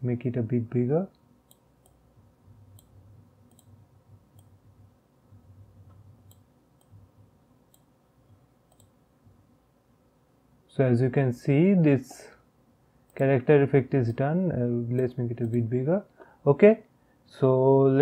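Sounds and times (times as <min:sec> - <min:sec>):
faint computer mouse clicks: 0:03.5 - 0:04.6, 0:07.7 - 0:09.0.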